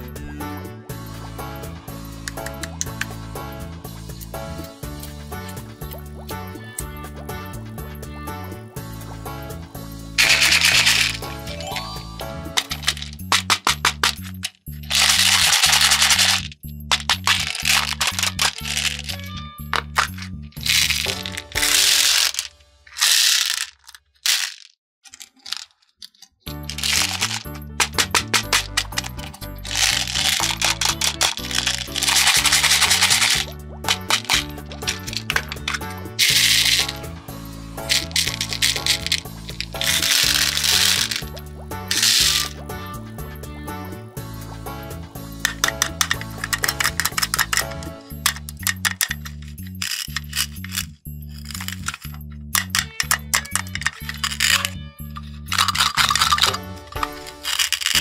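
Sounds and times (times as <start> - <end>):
background music: 0.0 - 23.7, 26.5 - 58.0
beads spilling into plastic tray: 10.2 - 25.7, 26.6 - 37.1, 37.8 - 42.6, 45.4 - 54.8, 55.5 - 58.0
plastic beads rattling in cup: 10.2 - 37.1, 37.8 - 42.6, 45.4 - 58.0.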